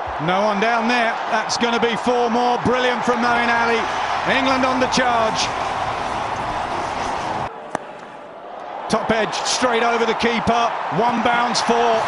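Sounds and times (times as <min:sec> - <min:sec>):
stadium crowd noise: 0:00.0 - 0:12.0.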